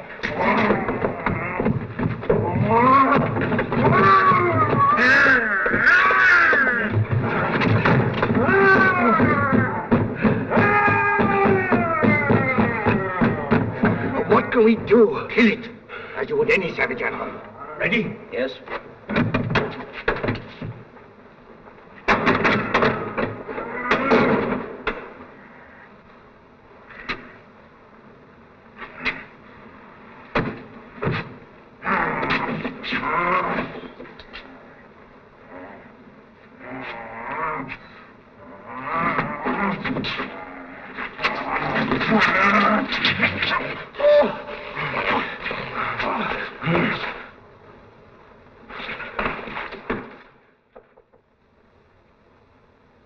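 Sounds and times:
vocal growls grunts and cries: 0.0 - 14.8, 22.3 - 24.7, 31.8 - 47.4.

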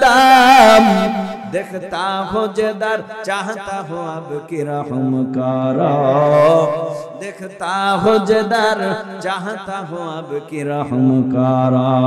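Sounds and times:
man chanting into microphone: 0.0 - 12.0.

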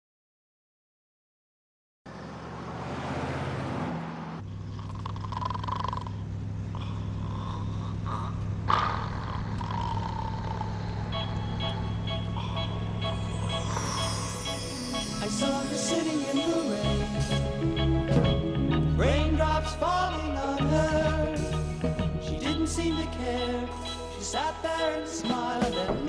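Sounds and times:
vehicle engine drone: 2.1 - 24.9.

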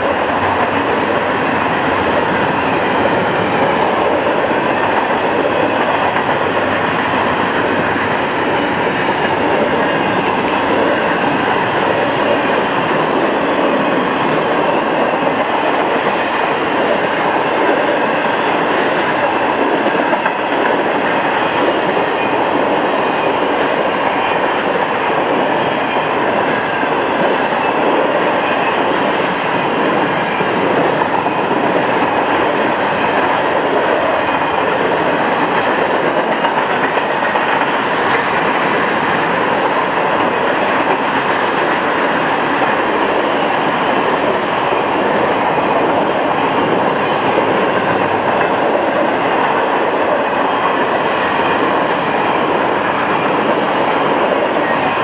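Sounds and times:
steel wheels on rail: 0.0 - 55.0.

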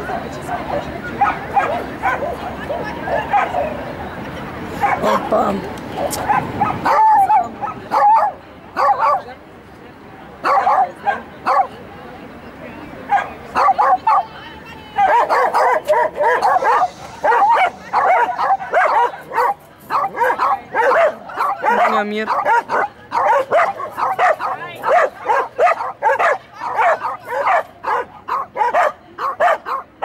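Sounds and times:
dog barking and yipping: 6.0 - 9.2, 15.0 - 30.0.

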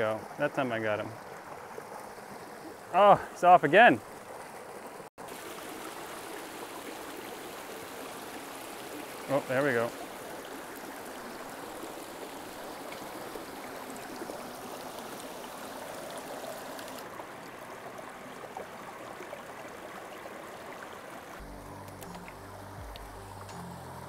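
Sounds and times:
low sustained music notes: 21.4 - 24.0.

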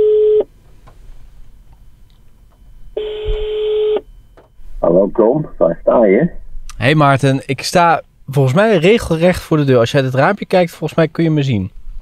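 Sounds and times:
telephone ringback beep: 0.0 - 0.5, 2.9 - 4.2
voice speaking on phone line: 4.8 - 6.4.

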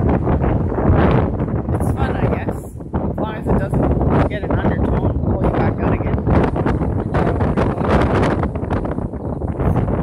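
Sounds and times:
gusty wind on microphone: 0.0 - 10.0.

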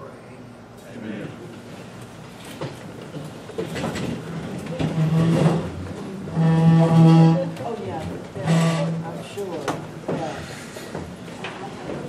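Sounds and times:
chair dragging on wooden floor: 3.7 - 9.4.

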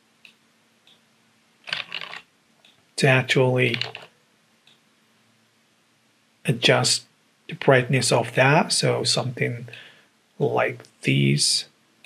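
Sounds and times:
computer keyboard typing: 1.7 - 2.2, 3.7 - 4.1.

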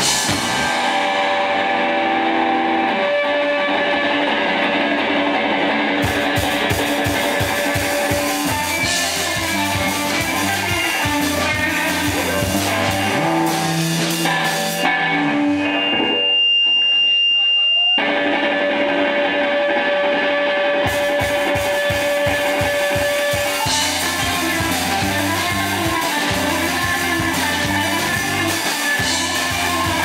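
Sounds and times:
bass guitar: 0.0 - 17.3, 17.9 - 30.0
drum kit: 0.0 - 30.0
electric guitar: 0.0 - 30.0.

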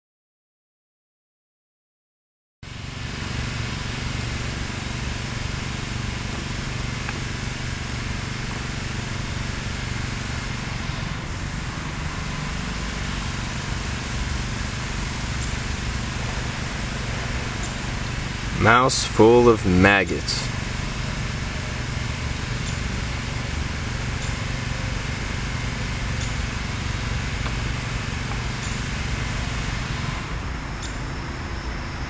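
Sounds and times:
distant road traffic: 2.6 - 32.0.

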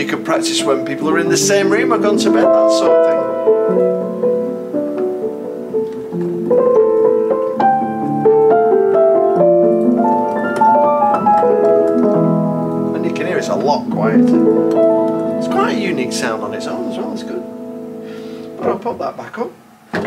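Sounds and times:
muted piano chords and melody: 0.0 - 20.0.

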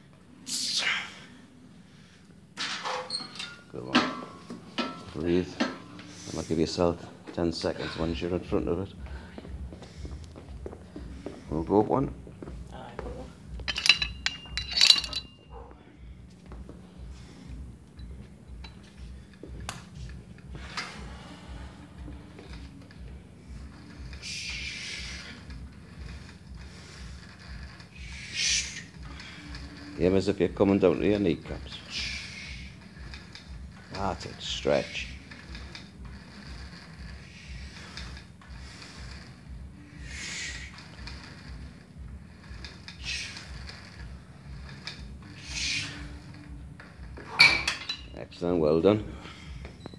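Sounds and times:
cable machine running: 17.6 - 49.3
hissing rush: 23.8 - 29.8, 42.3 - 46.3
man's hissing breaths out: 24.2 - 27.2, 31.8 - 32.8, 39.9 - 40.8, 45.4 - 46.2
mechanical clicks and creaks: 32.7 - 39.5, 40.7 - 48.1.

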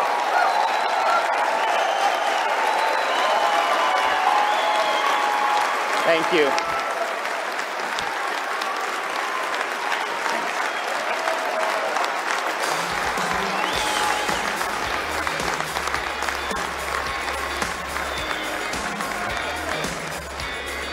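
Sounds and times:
audience applauding and cheering: 0.0 - 20.9
music with steady bass: 12.6 - 20.9.

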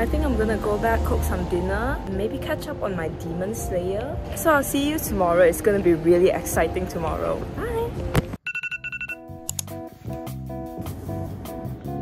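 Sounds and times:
background music: 0.0 - 12.0
alarm tone beeps: 8.4 - 9.2.

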